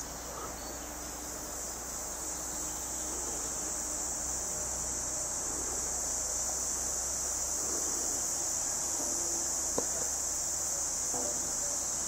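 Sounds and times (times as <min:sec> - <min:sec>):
high-pitched insects droning: 0:00.0 - 0:12.0.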